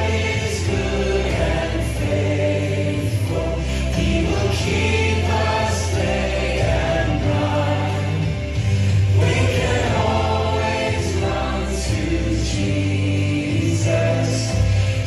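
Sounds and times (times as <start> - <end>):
group of voices singing: 0.0 - 15.0
steady bass: 0.0 - 15.0
worship band playing: 0.0 - 15.0.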